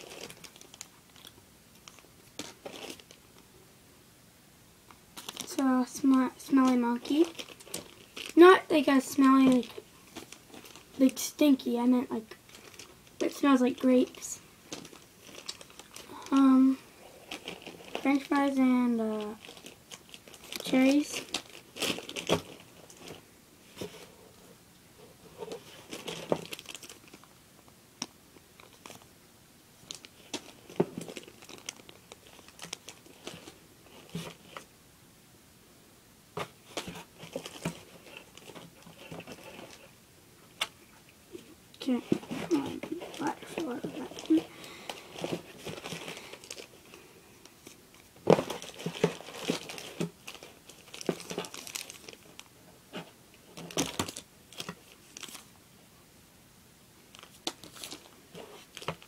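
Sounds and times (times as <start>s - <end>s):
rustling: 0.0s - 3.5s, 4.9s - 29.1s, 29.8s - 34.7s, 36.3s - 55.6s, 57.1s - 59.0s
toy erasers crinkling and clicking: 5.2s - 11.2s, 12.5s - 18.4s, 41.8s - 46.9s.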